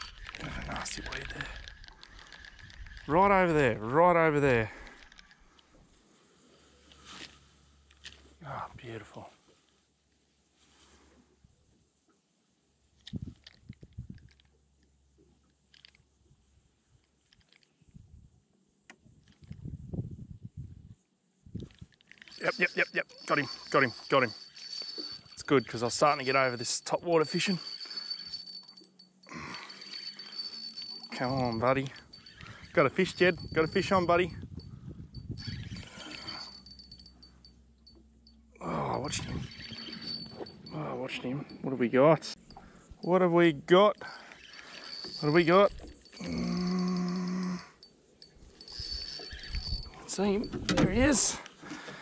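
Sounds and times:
spinning reel whirring and ticking: 0:22.3 - 0:34.2, 0:35.2 - 0:37.4, 0:39.2 - 0:40.7, 0:44.0 - 0:50.0
fishing reel clicks: 0:31.9 - 0:34.1.

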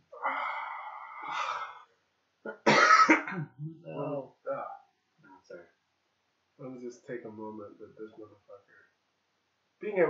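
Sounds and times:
loud cough-like burst: 0:02.6 - 0:03.5.

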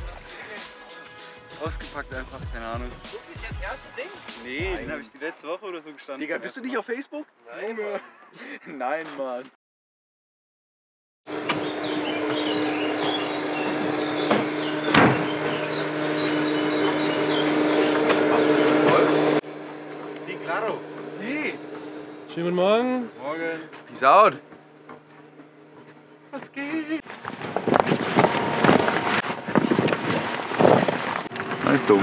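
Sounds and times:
fabric cover rustling: 0:27.1 - 0:31.7.

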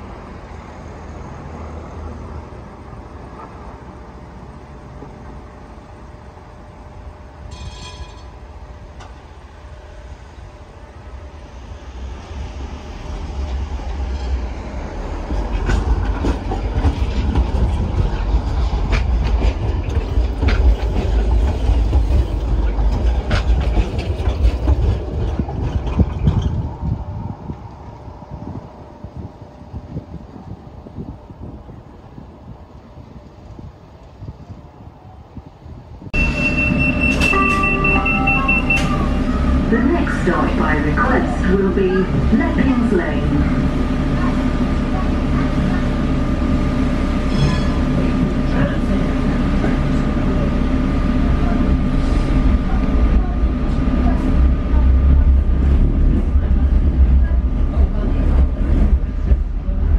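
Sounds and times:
tram wheels rumbling on rails: 0:00.0 - 0:59.9.

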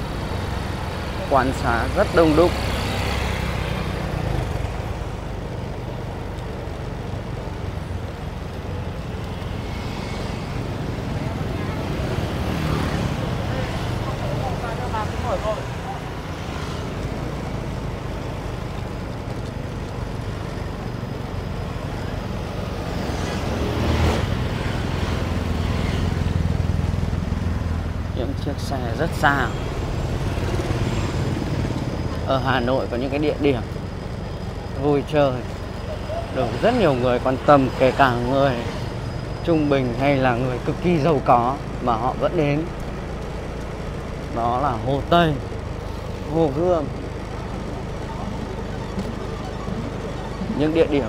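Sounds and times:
scooters and cars passing: 0:00.0 - 0:51.0
passers-by talking: 0:10.1 - 0:22.9, 0:28.1 - 0:51.0.

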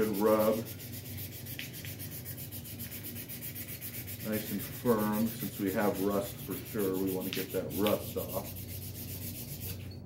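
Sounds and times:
abrasive paper rubbing on steel: 0:00.0 - 0:09.9.

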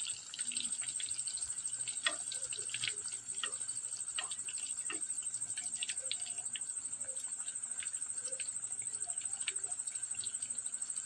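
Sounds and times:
cricket trilling: 0:00.0 - 0:11.0
food frying in hot oil: 0:00.0 - 0:11.0.

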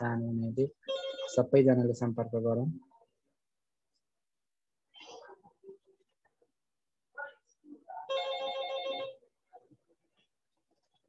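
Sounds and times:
phone ringtone: 0:00.8 - 0:01.6, 0:08.1 - 0:09.3.

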